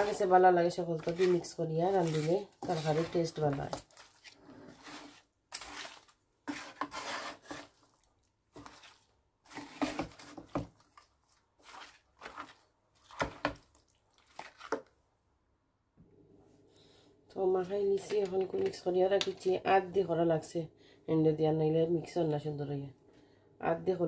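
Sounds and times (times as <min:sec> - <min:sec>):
wooden spatula scraping frying pan: 0:00.0 - 0:11.0, 0:11.6 - 0:13.6.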